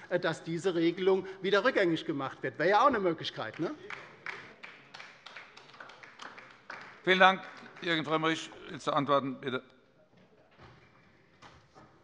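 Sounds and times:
sparse clapping: 3.4s - 8.5s.

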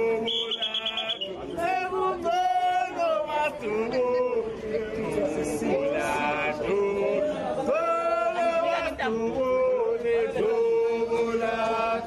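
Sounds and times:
men singing a chant: 0.0s - 12.0s.

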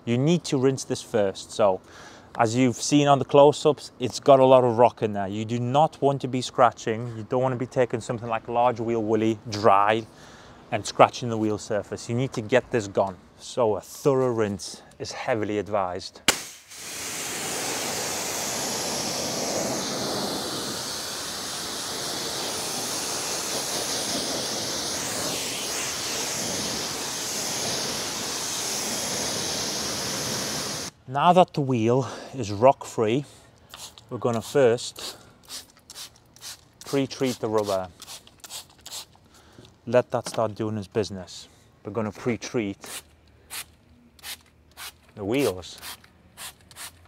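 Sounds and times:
pressure washer spray hissing: 16.3s - 30.9s, 33.8s - 39.1s, 42.8s - 47.0s.

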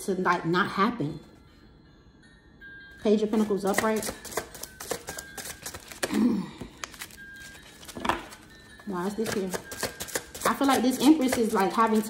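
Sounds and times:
cards clicking and tapping: 3.4s - 8.4s, 9.2s - 12.0s.

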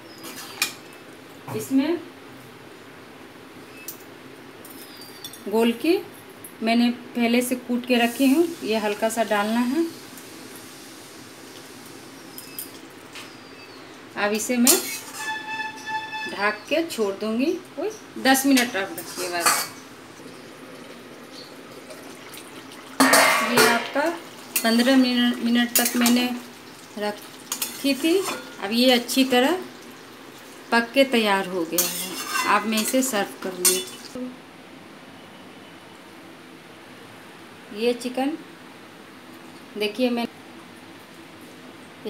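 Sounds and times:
faint steady hiss: 0.0s - 15.0s
gravy simmering hiss: 7.4s - 15.1s, 16.5s - 34.3s
metal spatula scraping pot: 14.6s - 16.6s, 18.6s - 19.8s, 31.7s - 34.0s.

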